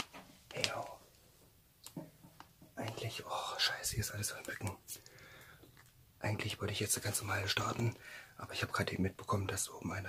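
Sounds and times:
person whispering: 0.5s - 1.1s, 2.8s - 5.2s, 6.2s - 10.0s.

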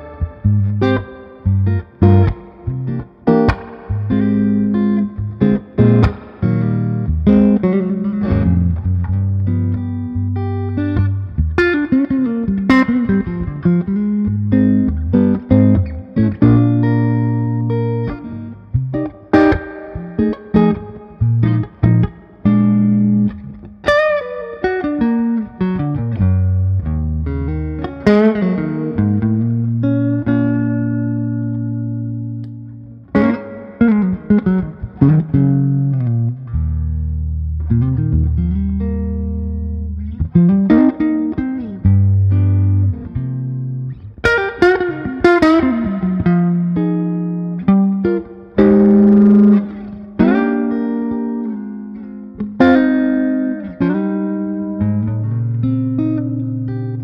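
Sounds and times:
electric guitar notes and chords: 0.0s - 57.0s.

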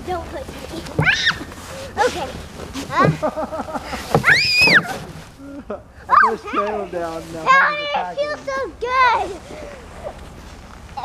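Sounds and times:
voices: 0.0s - 10.3s
girl screaming: 1.0s - 1.5s, 4.2s - 4.9s, 6.1s - 6.4s
girl laughing: 2.9s - 4.1s.

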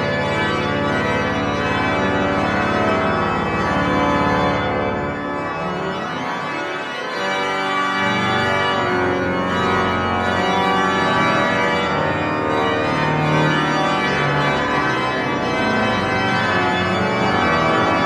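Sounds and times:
low organ pedal notes: 0.0s - 18.0s
pipe organ chords: 0.0s - 18.0s.

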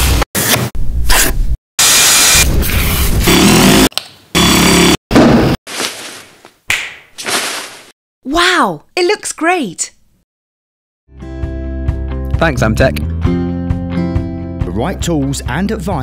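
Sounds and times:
diy work sound effects: 0.0s - 7.9s.

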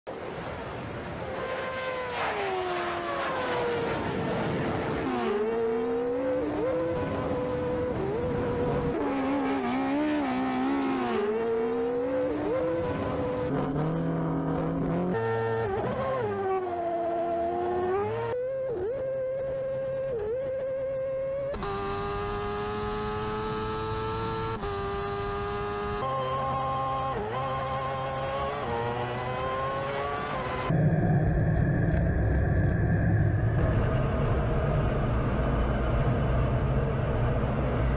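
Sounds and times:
racing engines revving: 1.3s - 30.9s.

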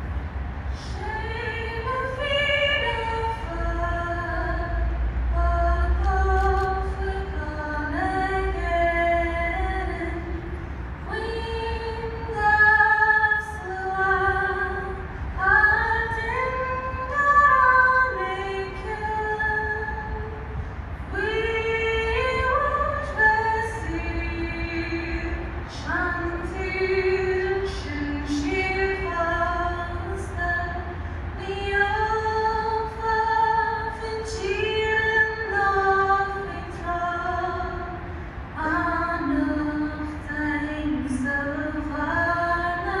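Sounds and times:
woman singing into a microphone: 0.7s - 43.0s.

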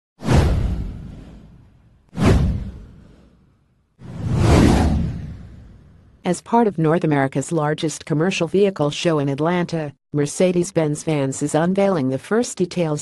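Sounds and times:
whoosh sound effects: 2.2s - 3.4s, 4.0s - 6.1s.

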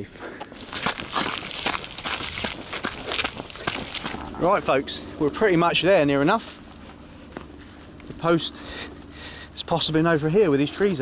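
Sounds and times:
footsteps on stony dirt path: 0.0s - 9.2s.

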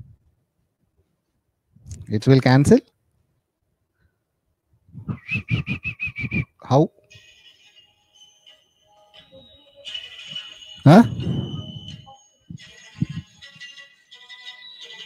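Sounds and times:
garbled tinny voice over audio link: 10.8s - 11.9s
man saying huh: 10.9s - 11.3s.

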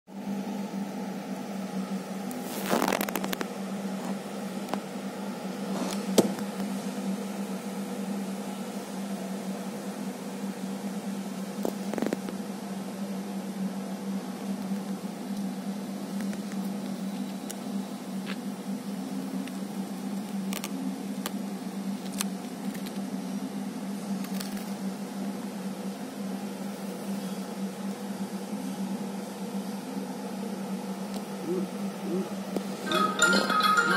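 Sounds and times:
freezer humming: 0.1s - 33.9s
sharp clicks and crackles: 2.6s - 3.5s.

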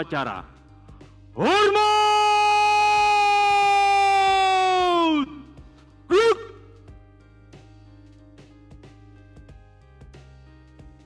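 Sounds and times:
man shouting parade command: 1.4s - 5.3s, 6.1s - 6.6s.

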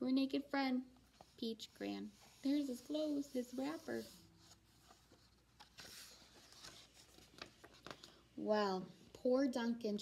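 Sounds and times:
paper rustling: 2.2s - 8.2s.

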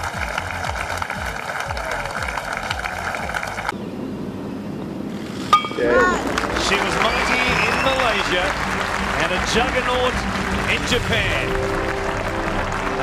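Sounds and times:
crowd applauding and cheering: 0.0s - 3.7s, 6.0s - 13.0s.

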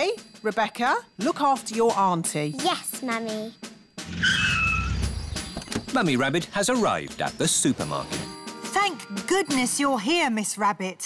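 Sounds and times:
tyre squeal: 4.1s - 5.7s.

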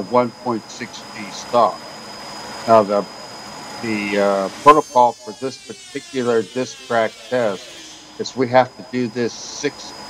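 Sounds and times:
man talking: 0.0s - 1.8s, 2.7s - 3.1s, 3.8s - 9.9s
faint steady hum: 0.0s - 10.0s
high whine: 0.0s - 10.0s.

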